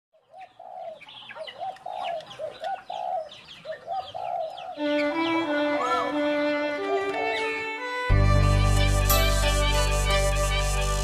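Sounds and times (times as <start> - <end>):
birds calling: 0.2 - 8.1
music with long held notes: 4.8 - 11.0.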